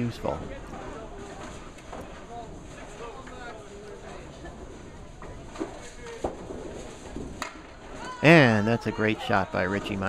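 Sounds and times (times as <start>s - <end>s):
murmur of chatter: 0.0s - 10.0s.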